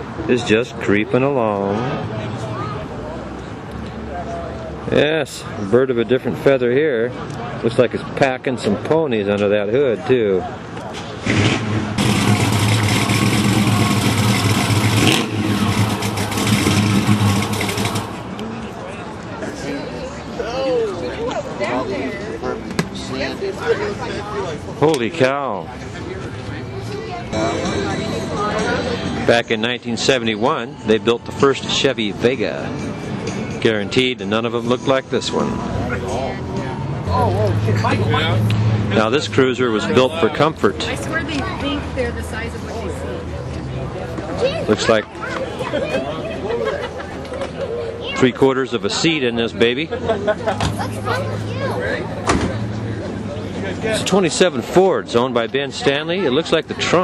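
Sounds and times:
car engine running: 11.6 - 18.4
people talking: 18.4 - 32.8, 33.5 - 57.0.

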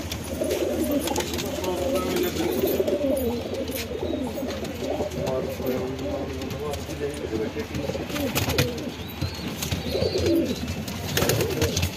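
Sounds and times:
pigeons cooing: 0.0 - 11.9.

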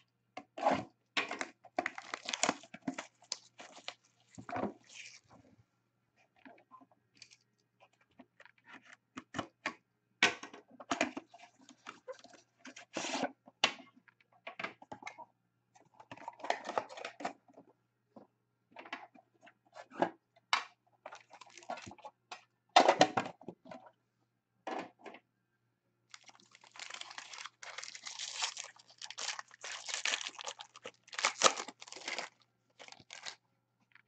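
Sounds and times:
cardboard and cards handled: 26.1 - 33.4.

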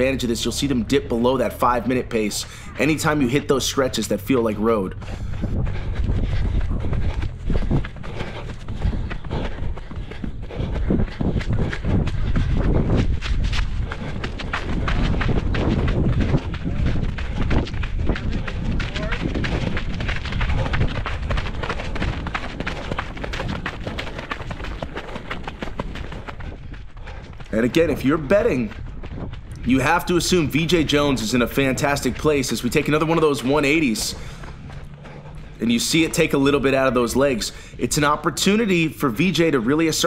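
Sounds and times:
running footsteps on gravel: 0.0 - 40.0
wind rumble on microphone: 4.6 - 38.5.

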